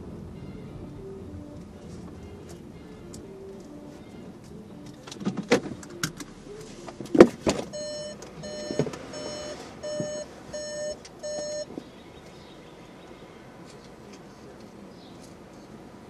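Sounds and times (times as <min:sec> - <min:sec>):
electronic beeper short beeps: 0:07.7 - 0:11.7.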